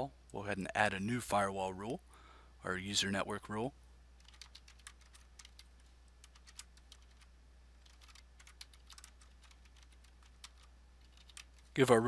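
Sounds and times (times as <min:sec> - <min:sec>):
low steady hum: 0:00.0 - 0:12.0
faint typing on keyboard: 0:04.2 - 0:11.9.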